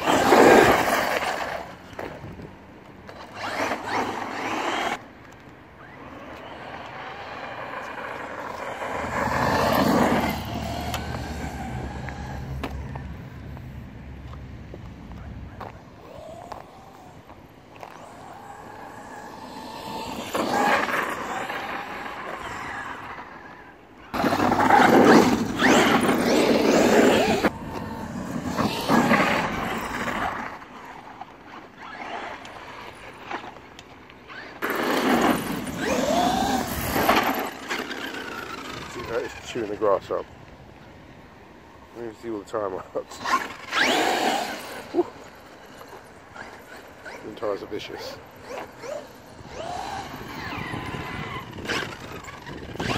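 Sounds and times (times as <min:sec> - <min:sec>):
electric motor whining: 0:05.8 - 0:13.0, 0:16.0 - 0:23.2, 0:24.2 - 0:30.6, 0:34.3 - 0:39.4, 0:43.3 - 0:52.9.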